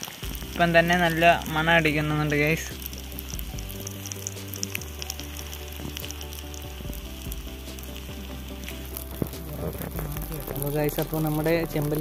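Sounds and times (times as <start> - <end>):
fish frying in hot oil: 0.0 - 12.0
oil crackling and spitting: 0.0 - 12.0.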